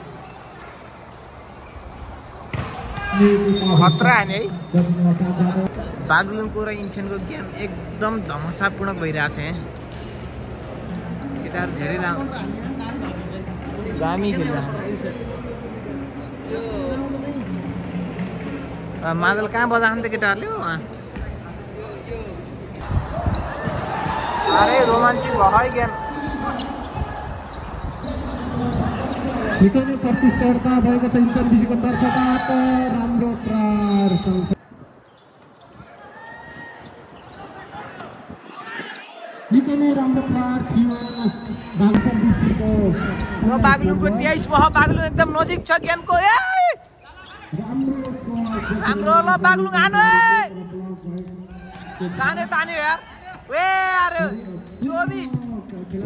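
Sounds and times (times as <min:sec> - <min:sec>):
crowd chatter: 0:00.0 - 0:56.0
players' voices in large hall: 0:00.0 - 0:56.0.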